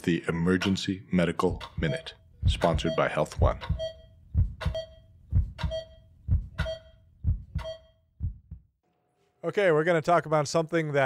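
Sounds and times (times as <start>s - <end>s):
heartbeat-like double thump: 1.6s - 8.8s.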